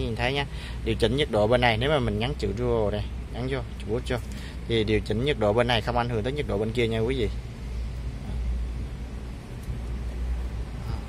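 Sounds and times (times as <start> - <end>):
car cabin rumble and hiss: 0.0 - 11.0.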